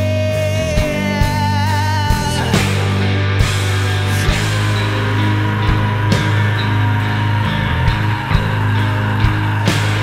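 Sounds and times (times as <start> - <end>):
distorted guitar chords: 0.0 - 10.0
sharp drum hits: 2.2 - 4.8.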